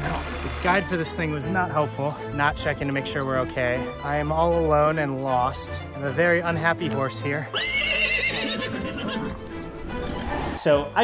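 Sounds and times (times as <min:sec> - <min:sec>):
background music: 0:00.0 - 0:11.0
horse whinnying: 0:07.5 - 0:09.7.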